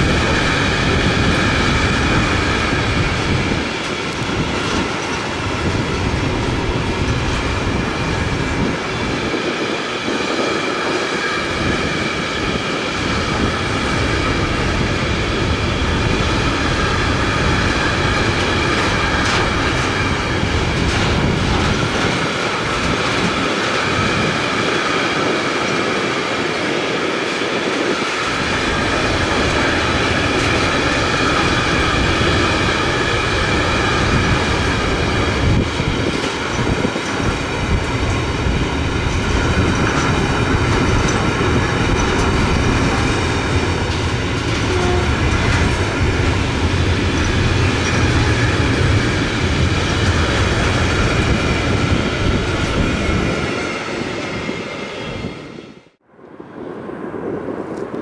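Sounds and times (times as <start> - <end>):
freight train wheels on rail: 0.0 - 58.0.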